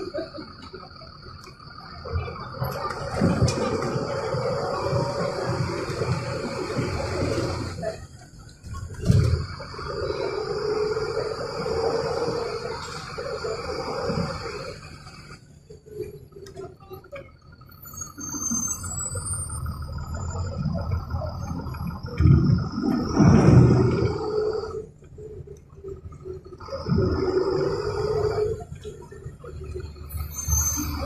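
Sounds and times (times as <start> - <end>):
bus engine rumble with whine: 0.0 - 31.0.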